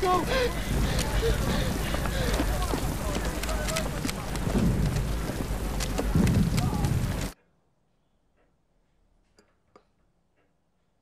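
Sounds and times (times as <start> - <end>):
men talking and laughing: 0.0 - 6.2
rain hissing: 0.0 - 7.4.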